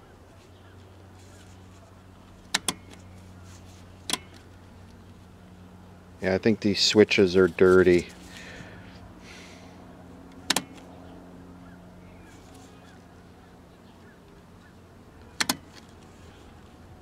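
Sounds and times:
low electrical hum: 0.0s - 17.0s
switch double clicks: 2.5s - 3.0s, 10.4s - 10.9s.

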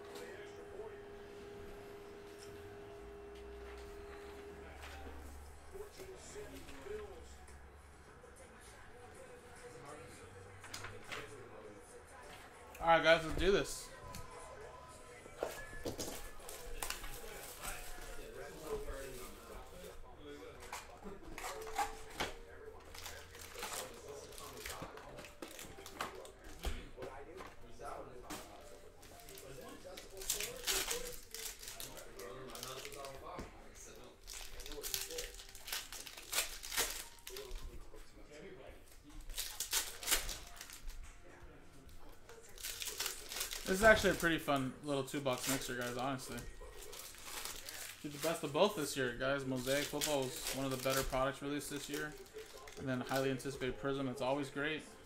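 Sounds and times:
plastic and foil packs crinkling: 15.5s - 41.2s, 41.8s - 54.8s.

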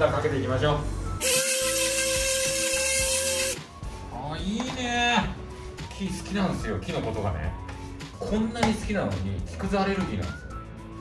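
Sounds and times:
orbital sander on wood: 1.2s - 3.6s.

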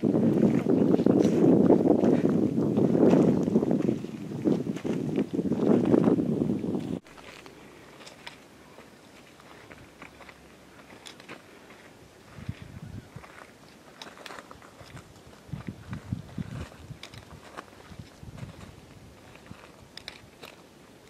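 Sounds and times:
boots crunching on gravel: 7.0s - 20.6s.

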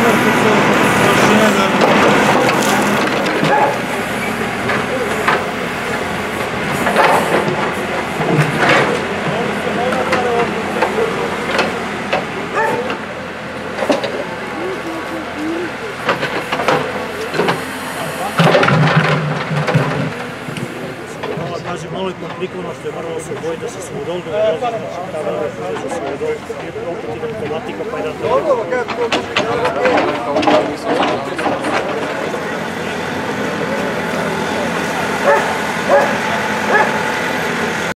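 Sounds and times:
diesel engine running: 0.0s - 37.9s
people talking: 0.0s - 37.9s
dog barking: 3.4s - 3.8s, 12.6s - 12.9s, 35.2s - 37.0s.

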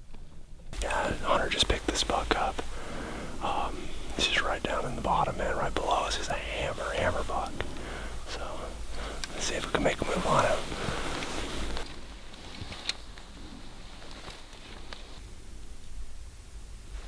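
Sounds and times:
man whispering: 0.8s - 11.8s.

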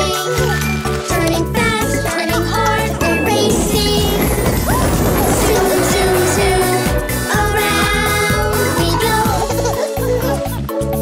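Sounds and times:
children's song music: 0.0s - 11.0s
cartoon racing car rushing: 2.8s - 7.7s.

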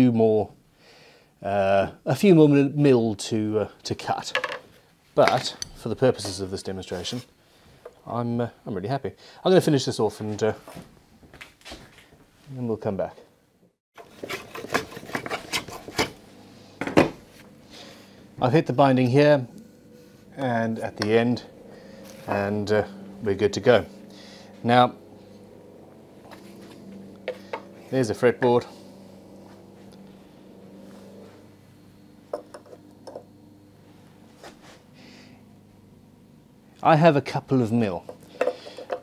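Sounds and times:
steady low hum: 14.0s - 39.0s.

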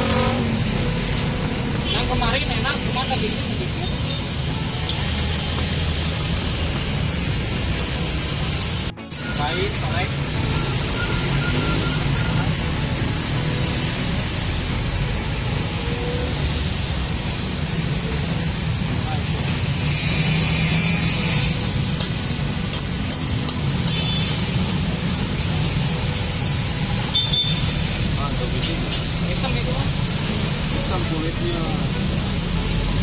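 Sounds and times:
traffic rumble: 0.0s - 33.0s.

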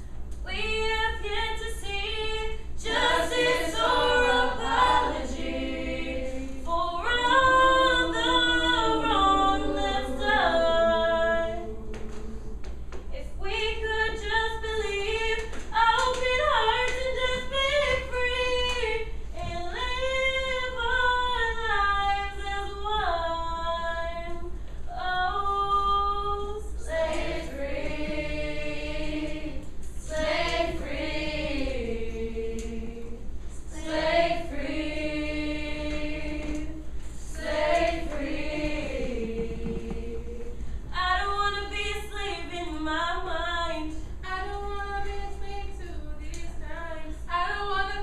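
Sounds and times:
women singing in harmony: 0.5s - 48.0s.

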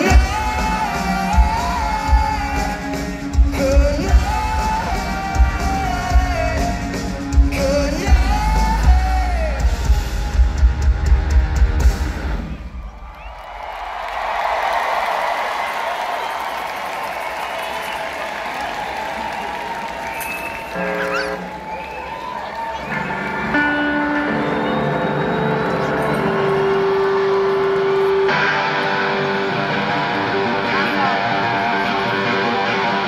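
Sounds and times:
live rock band: 0.0s - 12.8s, 22.6s - 33.0s
crowd cheering and screaming: 0.0s - 33.0s.

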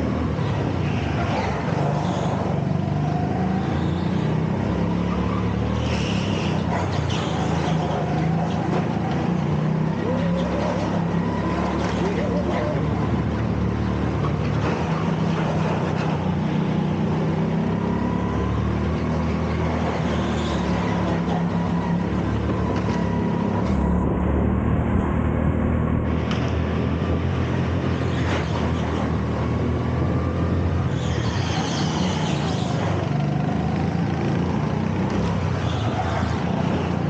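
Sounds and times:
go-kart engine running hard: 0.0s - 37.0s.

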